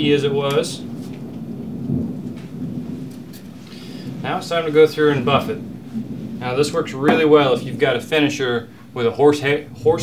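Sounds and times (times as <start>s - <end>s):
rolling thunder: 0.0s - 10.0s.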